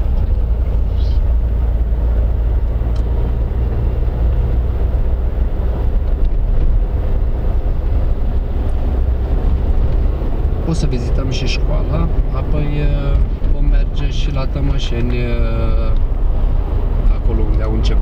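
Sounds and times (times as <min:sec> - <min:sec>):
car engine and tyres rumbling: 0:00.0 - 0:18.0.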